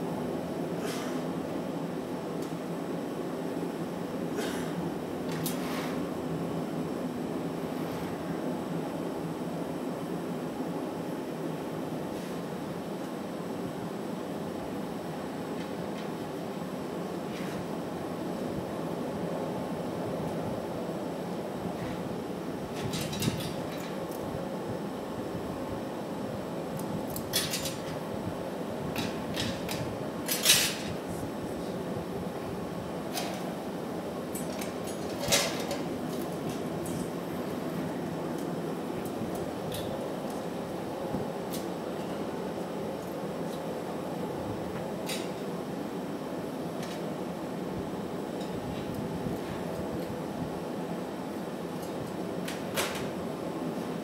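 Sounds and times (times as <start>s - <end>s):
furnace and fan roar: 0.0s - 54.0s.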